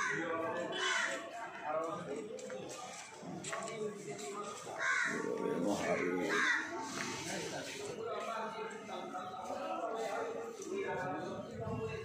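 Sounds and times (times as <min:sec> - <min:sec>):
murmuring voices: 0:00.0 - 0:12.0.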